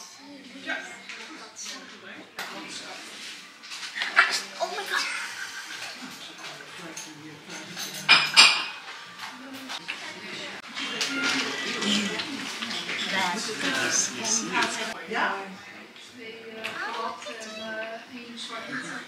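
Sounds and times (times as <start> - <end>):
dishes and cutlery clinking: 1.1 - 15.0.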